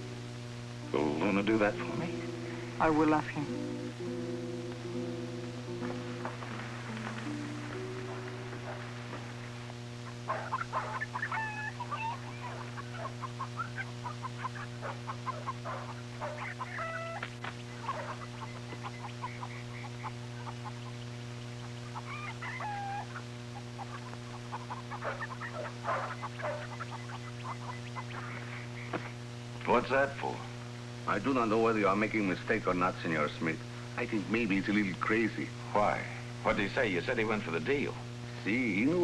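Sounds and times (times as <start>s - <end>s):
low electrical hum: 0.0s - 39.0s
chickens clucking: 0.9s - 29.2s.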